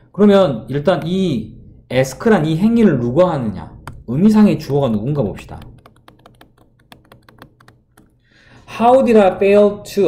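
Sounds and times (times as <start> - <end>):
stylus tapping on tablet screen: 3.8 - 8.2.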